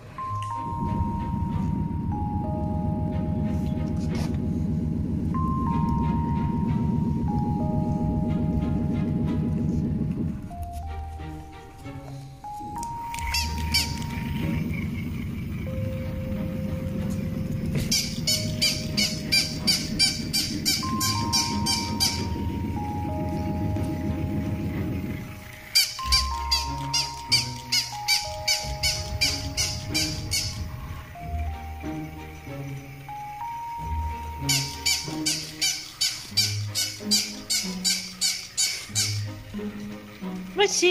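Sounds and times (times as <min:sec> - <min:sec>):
light background music: 0:00.0 - 0:40.9
squeaky electronic yaps: 0:12.9 - 0:14.7, 0:17.7 - 0:23.5, 0:25.3 - 0:31.2, 0:34.2 - 0:39.5.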